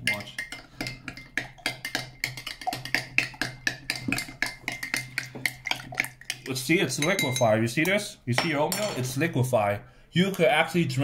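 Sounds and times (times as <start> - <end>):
metal spoon clinking against glass: 0.0 - 9.0.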